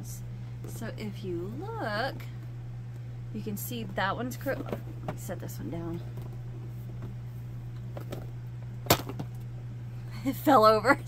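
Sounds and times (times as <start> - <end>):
cardboard box knocking down: 8.8 - 9.3.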